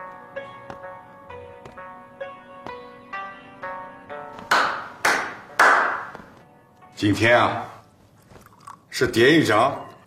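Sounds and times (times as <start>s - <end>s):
sharp hand claps: 4.4s - 6.3s.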